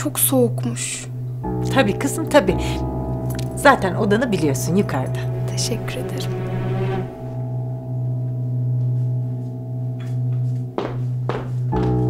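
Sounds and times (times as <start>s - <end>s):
dramatic score drone and chords: 0.1s - 10.8s.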